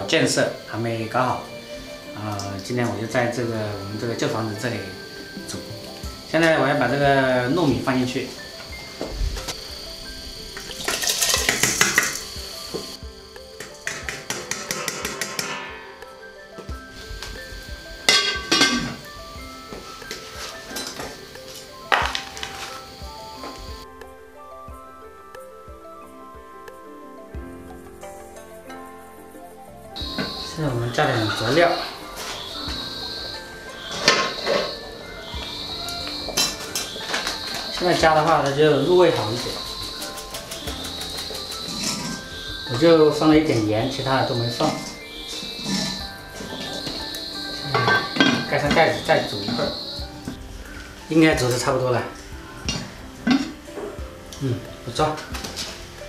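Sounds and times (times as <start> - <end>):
background music: 0.0 - 56.0
metal pot lid clinking: 18.1 - 19.0, 47.7 - 48.6.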